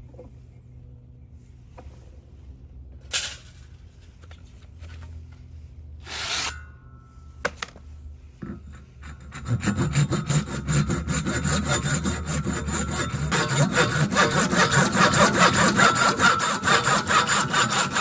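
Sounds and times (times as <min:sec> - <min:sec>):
knocks and scrapes of pipe: 0:07.5 - 0:10.4
hand saw cutting plastic pipe: 0:08.6 - 0:18.0.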